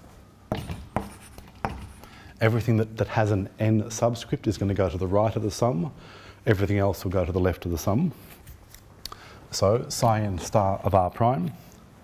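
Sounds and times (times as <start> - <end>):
chalk tapping and scratching: 0.5 - 2.2.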